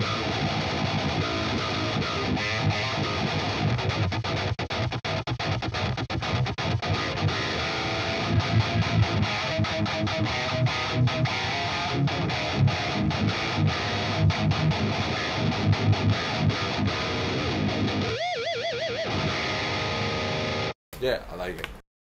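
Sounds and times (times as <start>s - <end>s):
distorted electric guitar riff: 0.0s - 20.7s.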